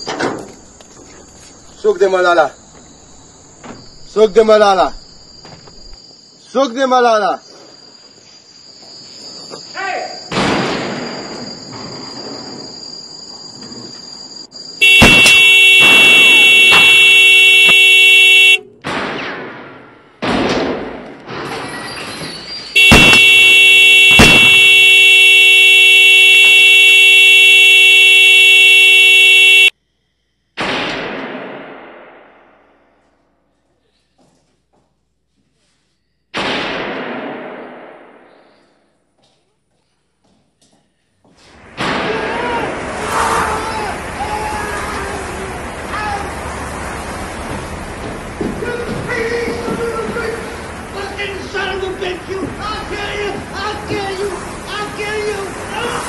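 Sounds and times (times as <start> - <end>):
sharp bangs: 10.3 - 11.9, 14.8 - 29.7, 30.6 - 33.2, 36.3 - 38.9, 41.6 - 44.2
loud horn-like blare: 14.8 - 18.7, 22.8 - 29.7.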